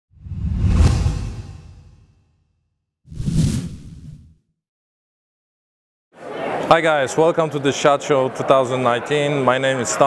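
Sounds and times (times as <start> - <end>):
deep rumble: 0.2 - 2.0
whoosh sound effects: 3.1 - 4.4.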